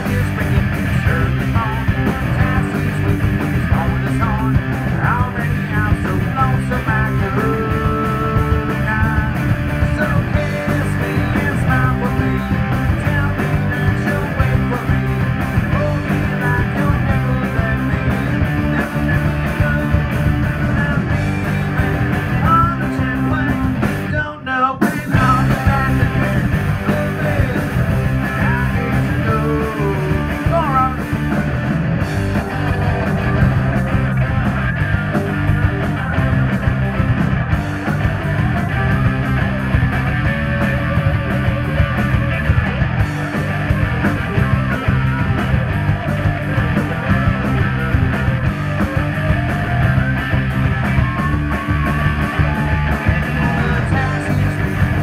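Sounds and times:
drum kit driving beat: 0:00.0 - 0:24.2, 0:24.8 - 0:55.0
distorted electric guitars: 0:00.0 - 0:55.0
punk rock band playing: 0:00.0 - 0:55.0
wavering lead guitar line: 0:00.0 - 0:55.0.

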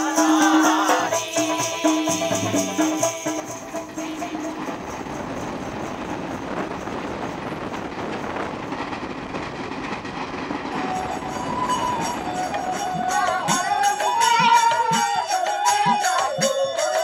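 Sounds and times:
train wheels rumbling and rattling: 0:00.0 - 0:15.6.

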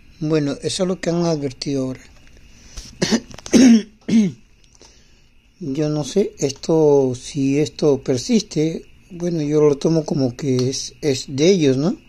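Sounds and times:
man coughing and clearing throat: 0:03.0 - 0:04.4.

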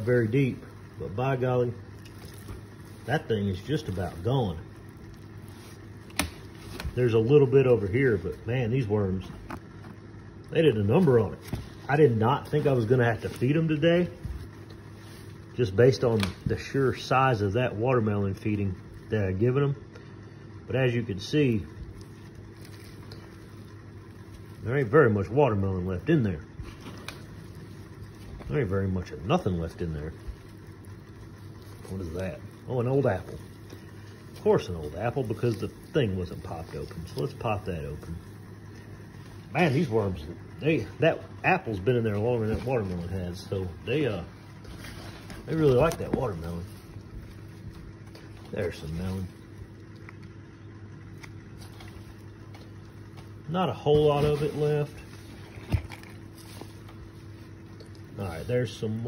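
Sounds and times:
hand rustling through compost: 0:00.0 - 0:19.3, 0:20.2 - 0:59.0
low background hum: 0:00.0 - 0:59.0.

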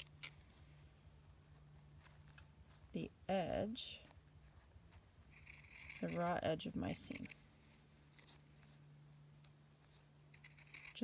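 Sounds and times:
low steady hum: 0:00.0 - 0:11.0
shears cutting fabric rasp: 0:05.3 - 0:07.4, 0:10.4 - 0:11.0.

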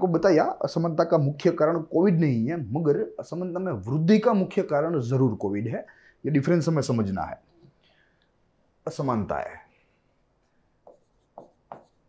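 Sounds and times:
pen strokes on whiteboard: 0:10.8 - 0:12.0.

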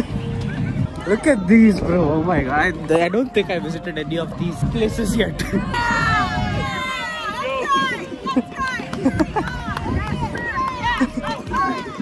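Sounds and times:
footsteps of people walking: 0:00.0 - 0:12.0
people talking and calling out: 0:00.0 - 0:12.0.

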